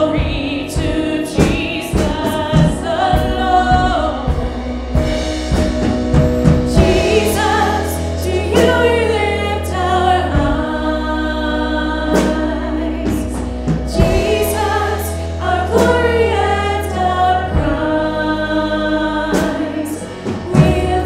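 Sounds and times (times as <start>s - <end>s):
women singing: 0.0s - 5.0s, 6.7s - 21.0s
drum kit: 0.0s - 21.0s
steady bass: 0.0s - 21.0s.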